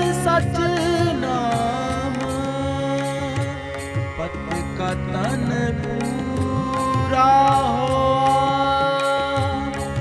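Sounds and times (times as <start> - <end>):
harmonium sustained notes: 0.0 - 10.0
tabla beat: 0.0 - 10.0.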